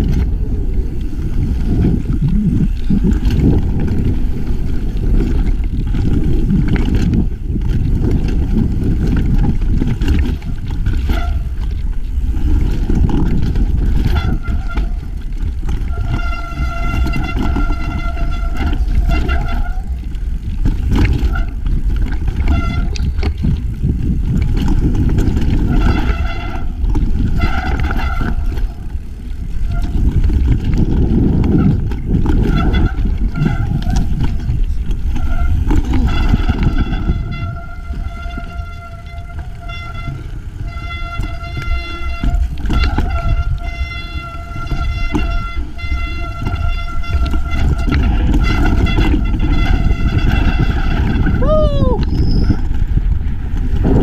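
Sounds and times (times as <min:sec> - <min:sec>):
bike knocks and rattles: 0:00.0 - 0:54.0
high-pitched bike whine: 0:00.0 - 0:54.0
wind and tyre rush: 0:00.0 - 0:54.0.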